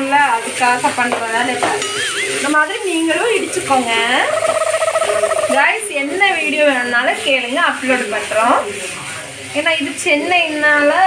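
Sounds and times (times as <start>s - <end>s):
vegetables sizzling in a pan: 0.0s - 11.0s.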